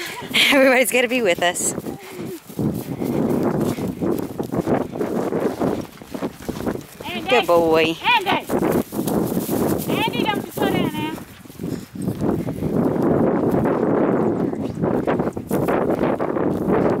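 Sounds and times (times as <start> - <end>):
footsteps crunching through dry grass: 0.0 - 17.0.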